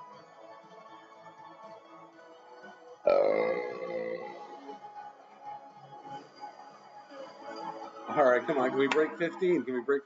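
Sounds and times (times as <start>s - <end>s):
person making loud low vocal sound: 3.1s - 4.6s.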